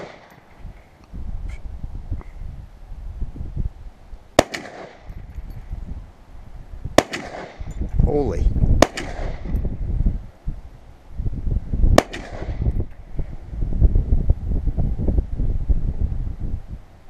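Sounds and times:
rifle shot with echo: 0:00.0 - 0:00.4, 0:04.4 - 0:05.1, 0:06.9 - 0:07.7, 0:08.8 - 0:09.6, 0:12.0 - 0:12.7
wind rumble on microphone: 0:00.0 - 0:04.4, 0:05.0 - 0:17.0.

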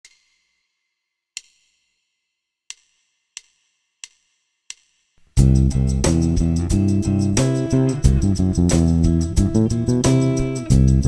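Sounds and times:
hi-hat count-in clicks: 0:00.0 - 0:00.7, 0:02.7 - 0:05.2.

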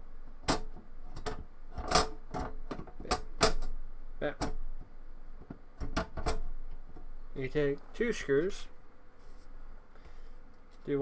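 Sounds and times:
hard drive knocking in metal cage: 0:00.4 - 0:04.7, 0:05.4 - 0:06.6.

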